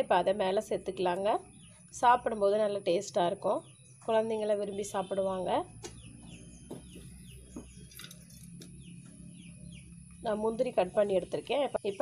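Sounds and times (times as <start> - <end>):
woman speaking: 0.0 - 5.8, 10.2 - 12.0.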